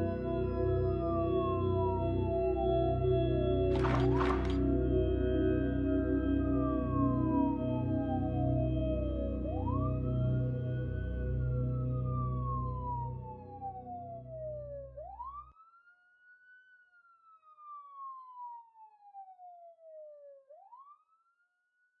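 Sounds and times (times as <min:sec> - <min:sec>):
low music drone: 0:00.0 - 0:14.8
police siren wailing: 0:01.3 - 0:04.8, 0:06.2 - 0:15.9.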